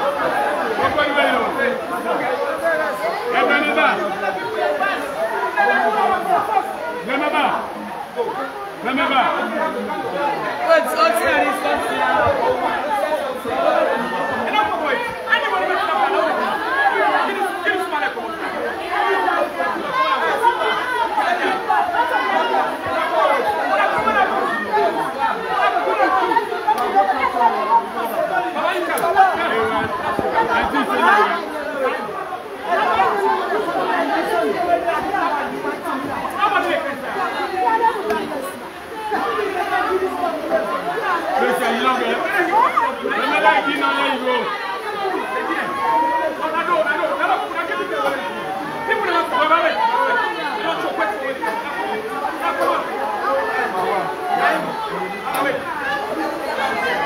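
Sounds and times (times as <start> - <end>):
crowd chatter: 0.0 - 57.0.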